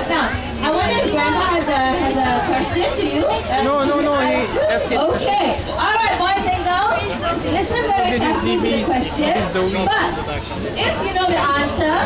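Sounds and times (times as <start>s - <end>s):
woman talking over loudspeaker: 0.0s - 10.2s, 10.8s - 12.0s.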